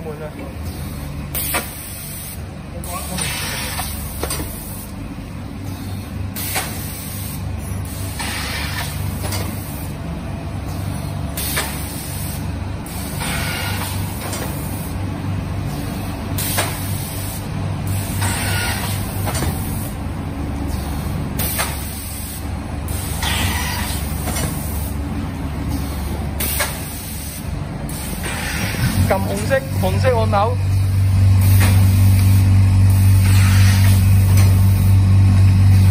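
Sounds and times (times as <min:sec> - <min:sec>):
machine motor hum: 0:00.3 - 0:35.9
compressed air hiss: 0:26.0 - 0:29.1, 0:31.4 - 0:34.0.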